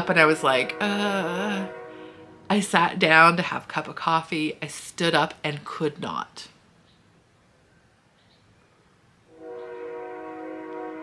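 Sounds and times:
train horn blowing: 0:00.0 - 0:02.5, 0:09.3 - 0:11.0.

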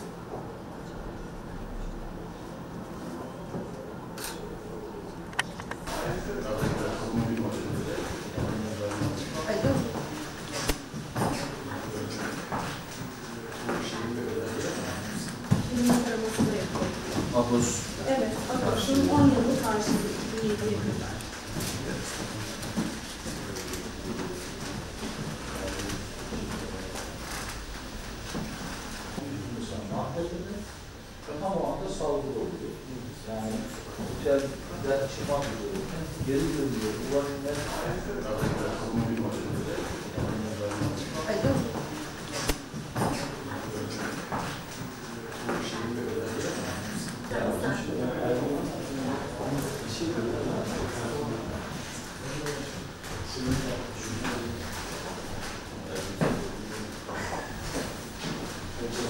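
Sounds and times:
faint indistinct voices: 0:00.0 - 0:59.0
steady low hum: 0:00.0 - 0:59.0.

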